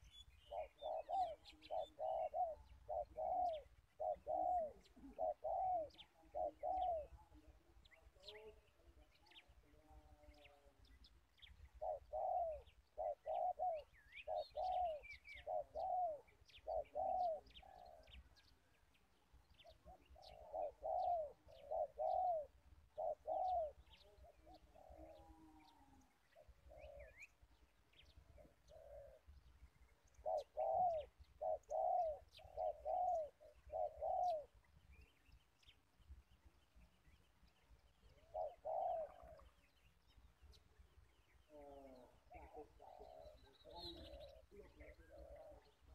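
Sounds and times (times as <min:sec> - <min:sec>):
dove cooing: 0:00.0 - 0:10.8, 0:11.7 - 0:18.5, 0:19.6 - 0:27.5, 0:28.2 - 0:29.5, 0:30.1 - 0:34.7, 0:38.0 - 0:39.7, 0:41.4 - 0:45.9
small birds chirping: 0:00.0 - 0:45.9.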